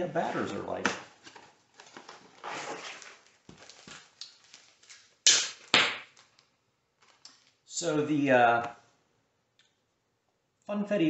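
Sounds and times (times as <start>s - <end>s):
cardboard box rustling: 1.1s - 4.9s
plastic bag crinkling: 1.1s - 7.7s.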